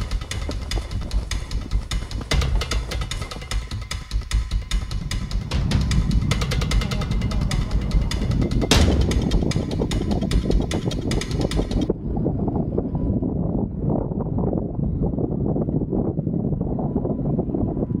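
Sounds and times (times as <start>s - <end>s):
music with drum beat: 0.0s - 11.9s.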